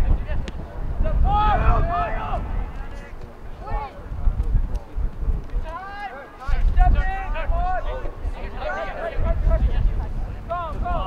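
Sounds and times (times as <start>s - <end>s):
wind rumbling on microphone: 0.0s - 11.0s
distant voices calling out: 0.7s - 4.4s.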